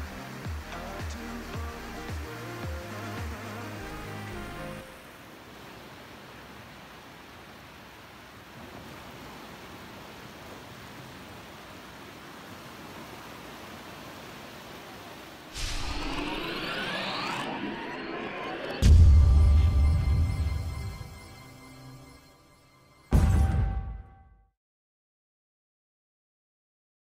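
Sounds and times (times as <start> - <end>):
music: 0.0 - 5.0, 18.8 - 24.5
surf washing up a beach: 0.0 - 17.2
sweeping sound effect: 15.5 - 23.1.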